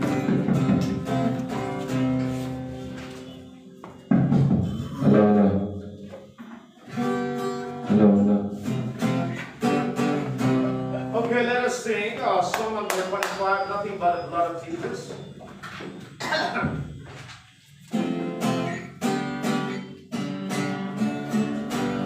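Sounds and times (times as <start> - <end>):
acoustic guitar strumming chords: 0.0 - 13.9, 17.7 - 22.0.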